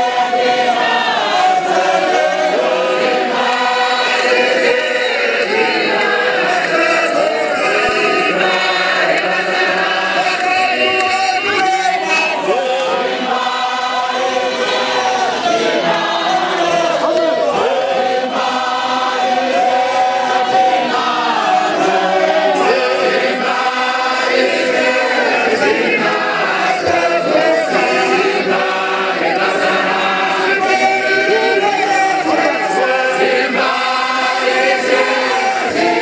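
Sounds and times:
large group singing: 0.0s - 36.0s.

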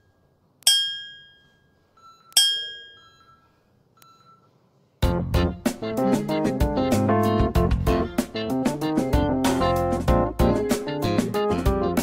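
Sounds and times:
bell-like chime dings: 0.0s - 3.6s.

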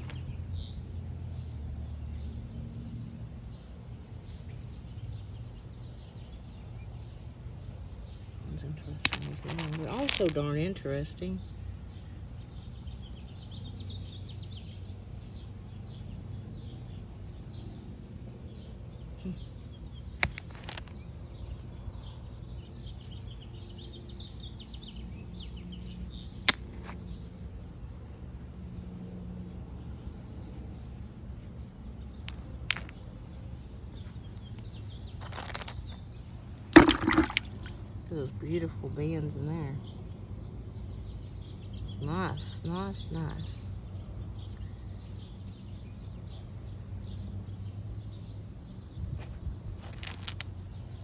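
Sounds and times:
rocks clicking together: 8.9s - 10.4s, 20.2s - 21.0s, 26.4s - 27.0s, 32.2s - 33.1s, 34.6s - 36.0s, 36.7s - 37.8s, 49.8s - 50.6s
faint bird chirping: 10.4s - 51.0s
short water splash: 36.7s - 37.8s.

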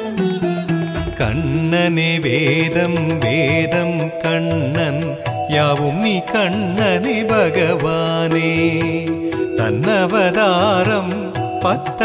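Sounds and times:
percussion strokes: 0.0s - 12.0s.

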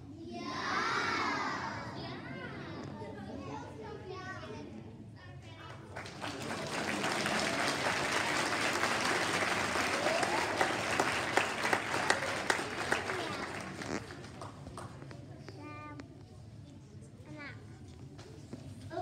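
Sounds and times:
audience clapping: 5.9s - 15.0s.

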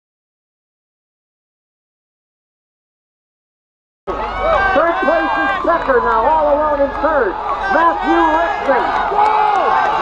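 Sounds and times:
race announcer calling: 4.1s - 10.0s.

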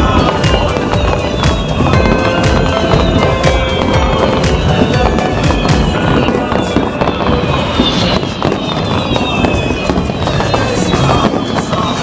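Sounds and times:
fireworks bursting: 0.0s - 12.0s.

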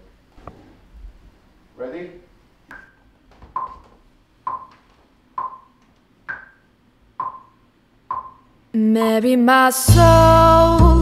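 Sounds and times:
metronome clicks: 7.2s - 9.2s.

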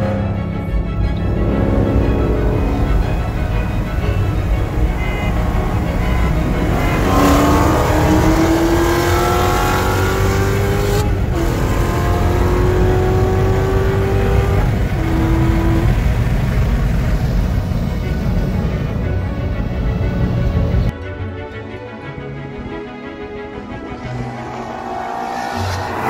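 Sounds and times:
car engine accelerating: 0.0s - 20.9s, 23.4s - 26.0s.

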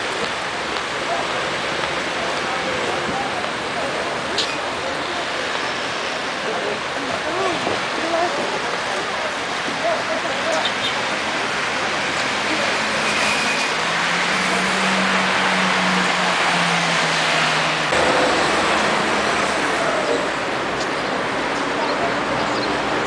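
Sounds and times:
city street traffic: 0.0s - 23.0s
voices of passers-by: 0.0s - 23.0s.

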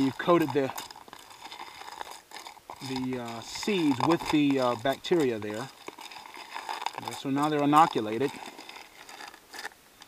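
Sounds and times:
spoon stirring seeds in plastic tub: 0.0s - 9.7s.

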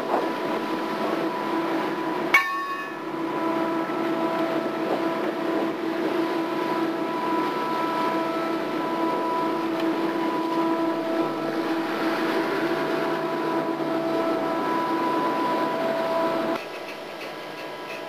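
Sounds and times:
high-pitched whine: 0.0s - 17.0s
machinery drone: 0.0s - 17.0s
churning water: 0.0s - 18.0s.

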